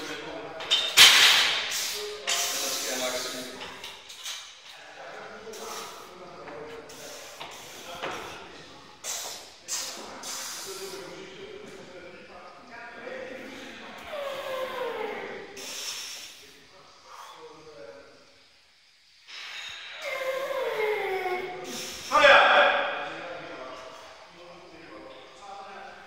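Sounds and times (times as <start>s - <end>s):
sharp breaths: 9.0s - 11.1s, 13.5s - 17.6s, 19.0s - 22.3s.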